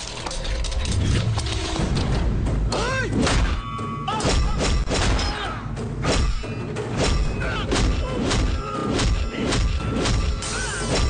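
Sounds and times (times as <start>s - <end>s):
loud background score: 0.7s - 11.0s.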